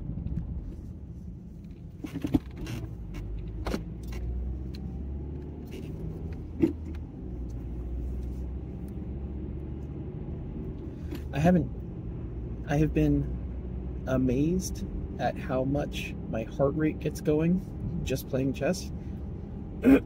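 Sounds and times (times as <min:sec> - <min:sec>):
car cabin rumble: 0:00.0 - 0:13.2.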